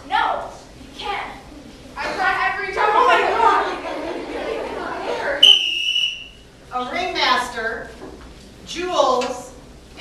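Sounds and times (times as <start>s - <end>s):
students talking: 0.0s - 9.6s
high whistle blast: 5.4s - 6.4s.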